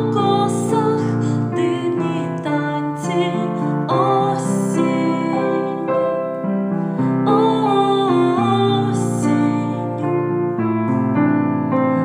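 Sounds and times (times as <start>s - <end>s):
woman singing a wavering note: 0.0s - 6.1s
upright piano playing: 0.0s - 12.0s.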